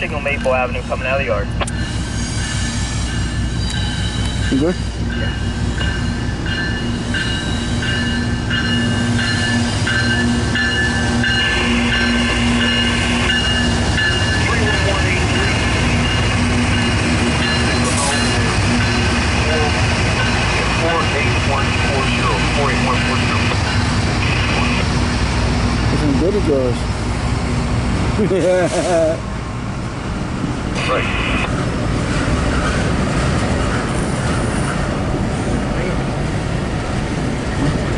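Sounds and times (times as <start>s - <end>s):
diesel locomotive engines: 0.0s - 37.9s
wheels rumbling on rail: 0.0s - 37.9s.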